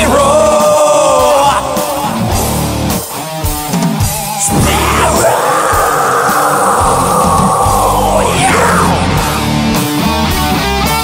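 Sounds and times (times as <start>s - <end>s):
heavy metal song: 0.0s - 11.0s.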